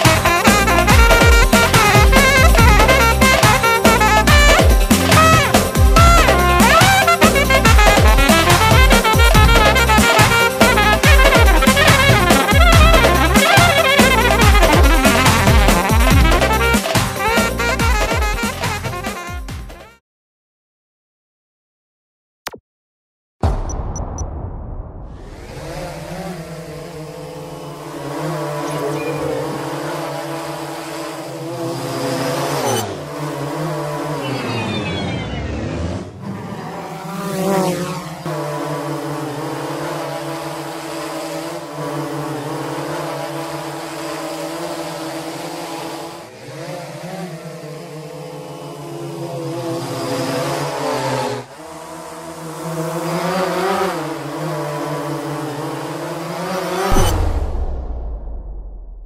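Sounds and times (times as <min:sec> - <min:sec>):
drone propellers buzzing: 0:00.0 - 0:19.2, 0:25.1 - 0:57.8.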